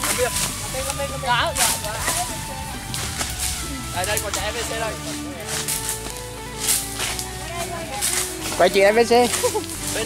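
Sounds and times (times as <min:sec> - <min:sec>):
background music: 0:00.0 - 0:10.0
rustling vegetation: 0:00.0 - 0:10.0.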